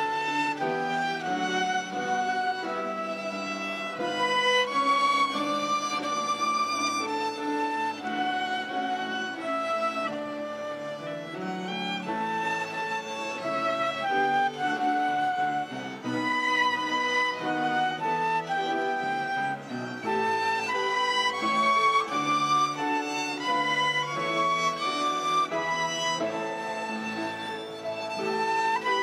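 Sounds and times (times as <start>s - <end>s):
violin-led ensemble playing slowly: 0.0s - 29.0s.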